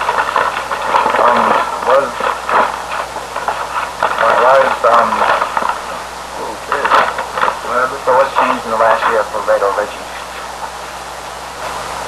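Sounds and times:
indistinct talking: 0:00.0 - 0:12.0
steady tape hiss: 0:00.0 - 0:12.0.

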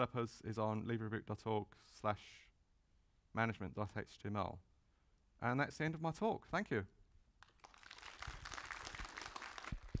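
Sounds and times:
audience applauding: 0:07.4 - 0:10.0.

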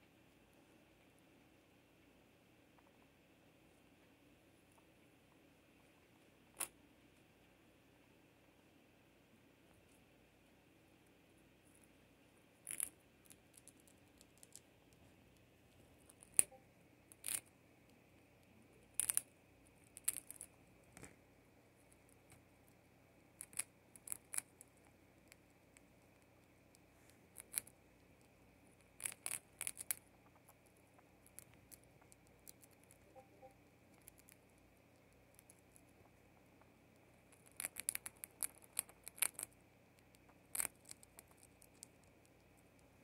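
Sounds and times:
mouse gnawing on a hard treat: 0:11.6 - 0:43.0.

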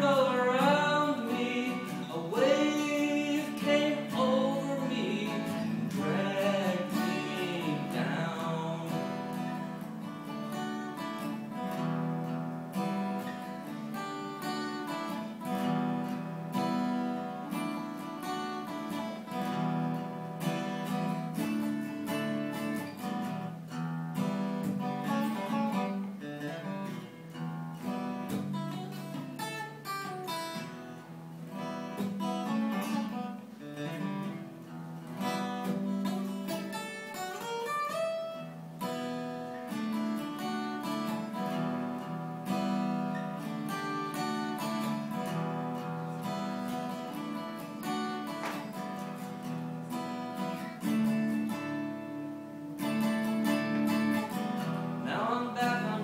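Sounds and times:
acoustic guitar strumming chords: 0:00.0 - 0:56.0
picked guitar notes: 0:00.0 - 0:56.0.

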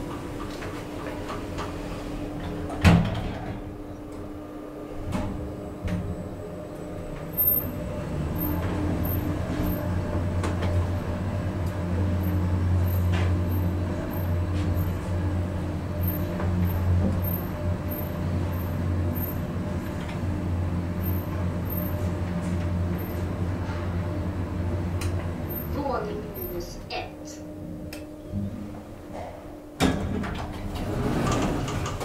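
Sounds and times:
elevator doors sliding shut: 0:00.0 - 0:26.6, 0:28.1 - 0:32.0
elevator travelling hum: 0:00.0 - 0:32.0.

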